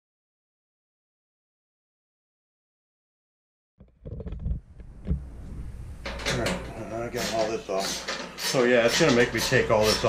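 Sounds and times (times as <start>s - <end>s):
low steady hum: 4.4s - 7.2s
tools knocking on sheet metal: 6.0s - 10.0s
man talking: 6.3s - 10.0s.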